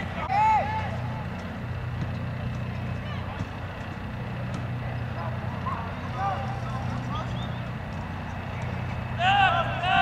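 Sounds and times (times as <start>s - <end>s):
distant voices calling: 0.0s - 10.0s
low mechanical hum: 0.0s - 10.0s.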